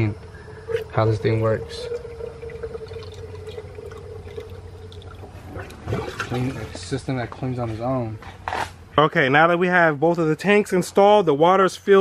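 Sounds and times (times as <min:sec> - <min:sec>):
water trickling from hose: 0:00.0 - 0:06.9
faint steady tone: 0:00.0 - 0:08.2.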